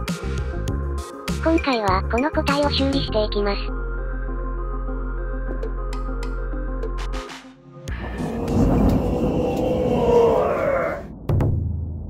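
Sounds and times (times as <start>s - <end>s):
whoosh rising in pitch: 7.9s - 11.1s
low rumble: 7.9s - 12.0s
thunderclap-like crash: 7.9s - 12.0s.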